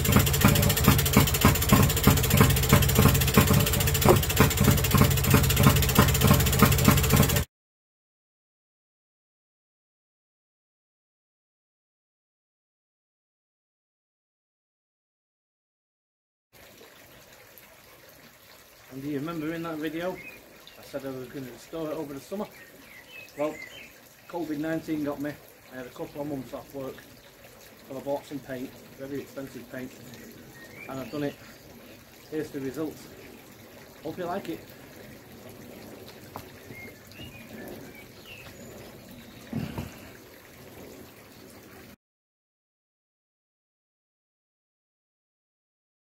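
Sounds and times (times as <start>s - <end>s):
outdoor background hiss: 16.6s - 41.9s
high bird chirps: 36.7s - 39.5s.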